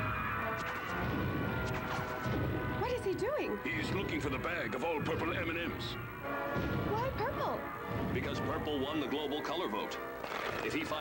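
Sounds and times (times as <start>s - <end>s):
dramatic film music: 0.0s - 11.0s.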